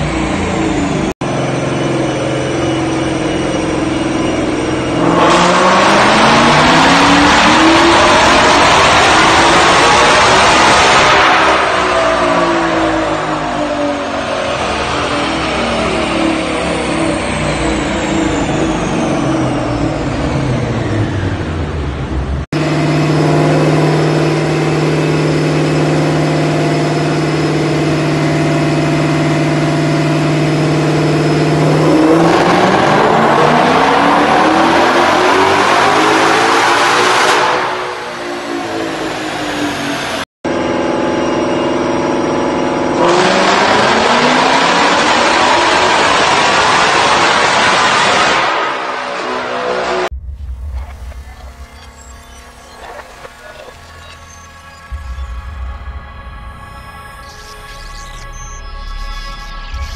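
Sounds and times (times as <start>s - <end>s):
car engine revving on dyno: 0.0s - 59.1s.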